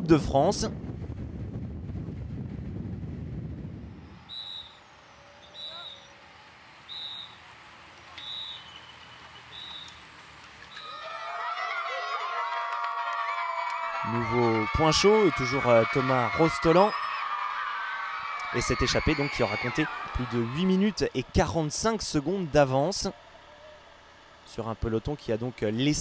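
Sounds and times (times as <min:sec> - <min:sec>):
wind and road rush: 0:00.0 - 0:08.0
high-pitched whistle blasts: 0:04.2 - 0:06.2, 0:06.8 - 0:07.4, 0:08.1 - 0:10.0, 0:10.7 - 0:11.0
children shouting and cheering: 0:10.8 - 0:21.2.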